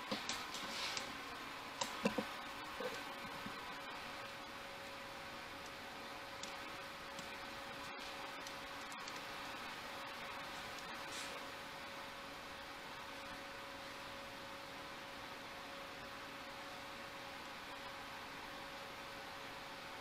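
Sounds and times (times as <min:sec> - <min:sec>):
faint constant hum: 0:00.0 - 0:20.0.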